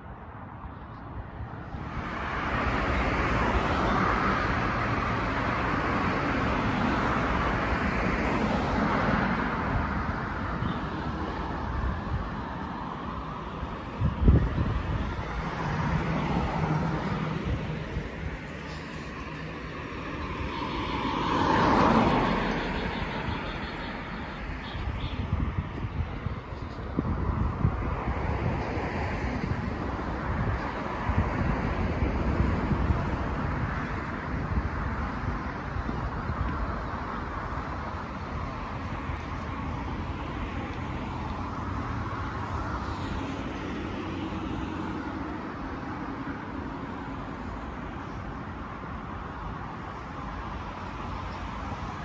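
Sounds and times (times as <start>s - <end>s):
road traffic passing: 0.0s - 52.0s.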